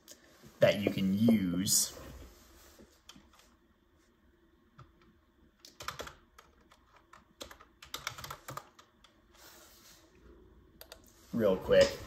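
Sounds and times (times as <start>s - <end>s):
faint typing on computer keyboard: 4.8s - 9.3s, 10.8s - 11.1s.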